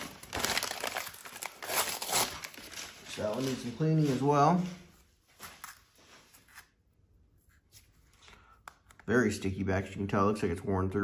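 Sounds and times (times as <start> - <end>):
newspaper crinkling: 0.0 - 6.7
paper tearing: 0.4 - 2.9.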